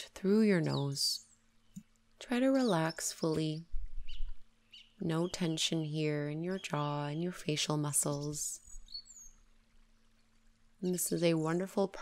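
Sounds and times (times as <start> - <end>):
woman speaking: 0.0 - 1.2, 2.2 - 3.7, 5.0 - 8.6, 10.8 - 12.0
faint low hum: 0.0 - 12.0
high falling bird chirp: 2.8 - 5.6, 8.0 - 9.5.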